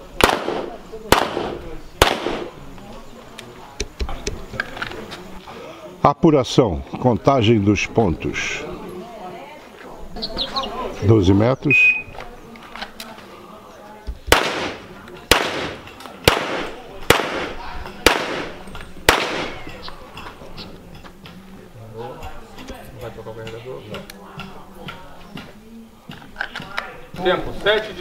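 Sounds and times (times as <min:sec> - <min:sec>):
pistol shots with echo: 0:00.2 - 0:02.6, 0:14.3 - 0:19.8.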